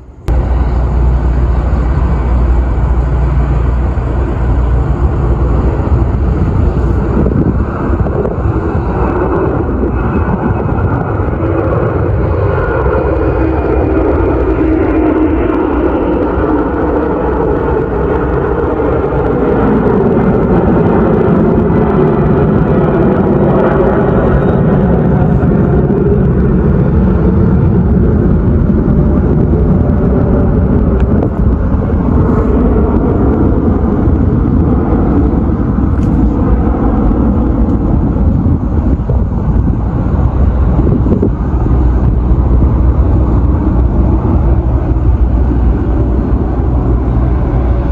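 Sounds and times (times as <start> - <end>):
faint high whine: 0.0 - 47.9
jet engines roaring overhead: 0.0 - 47.9
wind buffeting microphone: 0.0 - 47.9.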